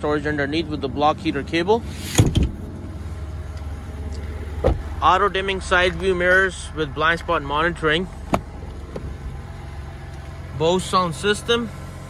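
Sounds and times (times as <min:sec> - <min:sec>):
vehicle engine idling: 0:00.0 - 0:12.0
thump: 0:02.1 - 0:02.6, 0:04.6 - 0:04.9.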